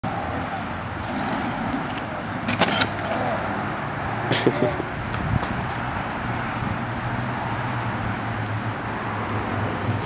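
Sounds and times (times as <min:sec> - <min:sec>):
road traffic hum: 0:00.0 - 0:10.0
wheelchair clattering on asphalt: 0:01.0 - 0:03.4.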